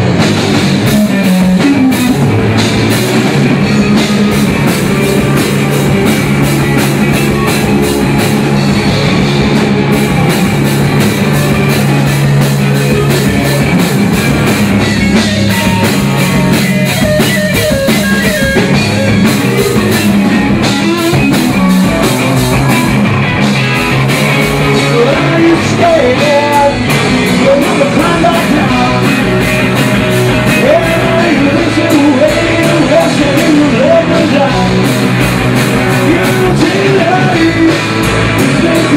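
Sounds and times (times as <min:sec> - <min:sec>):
drum kit steady beat: 0:00.0 - 0:38.9
electric guitar: 0:00.0 - 0:38.9.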